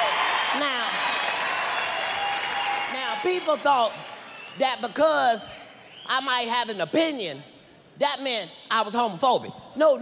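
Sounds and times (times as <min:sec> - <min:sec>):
audience applauding: 0:00.0 - 0:04.6.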